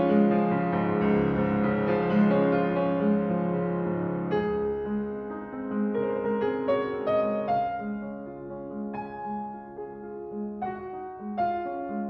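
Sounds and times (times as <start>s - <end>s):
slow piano music: 0.0s - 12.0s.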